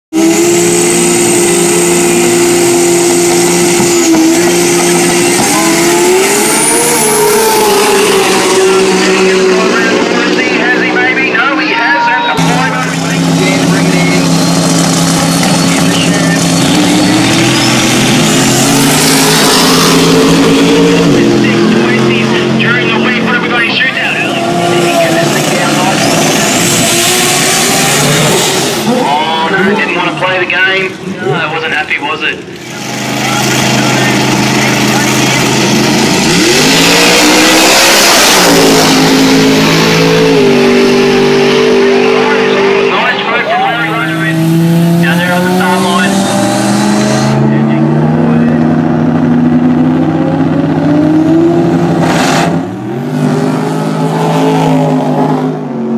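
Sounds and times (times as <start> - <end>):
drag racing car engines: 0.1 - 55.9
voices: 6.8 - 14.4, 15.3 - 17.8, 19.7 - 35.8, 41.5 - 44.4, 45.0 - 46.2, 47.3 - 48.7.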